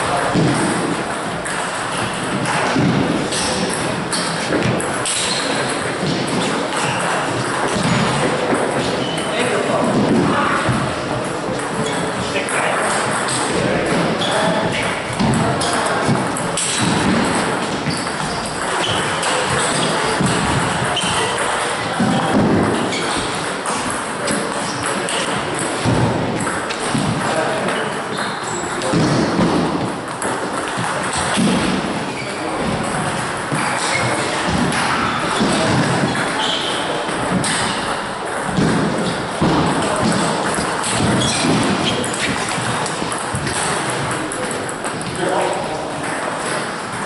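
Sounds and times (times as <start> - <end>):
hubbub of busy hall: 0.0 - 47.0
murmur of voices: 0.0 - 47.0
table tennis balls clicking: 0.0 - 47.0.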